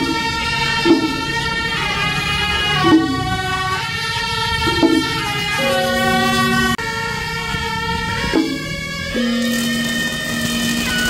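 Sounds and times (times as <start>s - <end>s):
marching band wind instruments: 0.0s - 11.0s.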